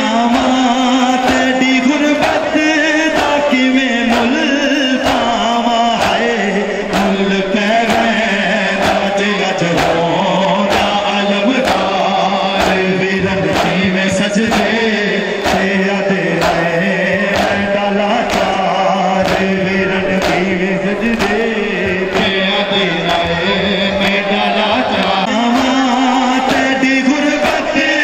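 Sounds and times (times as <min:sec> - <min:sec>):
men chanting in unison: 0:00.0 - 0:28.0.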